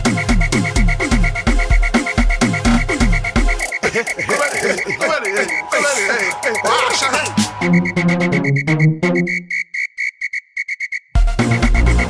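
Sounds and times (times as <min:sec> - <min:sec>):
high whistle-like pulsing tone: 0:03.6 - 0:12.0.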